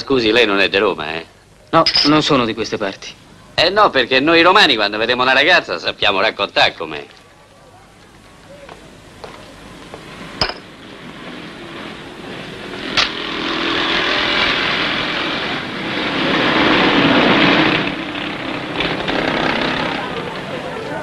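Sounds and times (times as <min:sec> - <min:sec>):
vehicle engine passing: 0:10.1 - 0:21.0.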